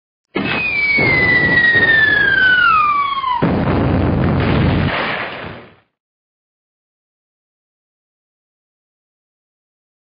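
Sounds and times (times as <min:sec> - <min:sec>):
falling bomb whistle: 0:00.3 - 0:03.6
rumbling explosion: 0:00.4 - 0:05.9.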